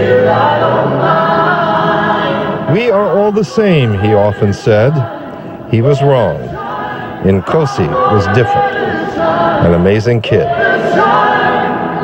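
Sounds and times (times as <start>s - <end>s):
choir singing a gospel hymn: 0.0s - 12.0s.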